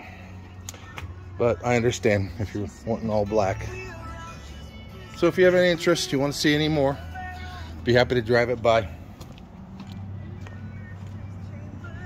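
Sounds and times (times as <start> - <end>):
music from radio: 0.0 - 12.0.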